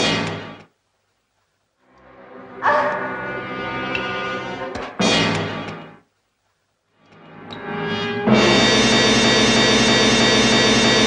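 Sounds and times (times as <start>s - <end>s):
orchestral brass chords: 8.3s - 10.8s.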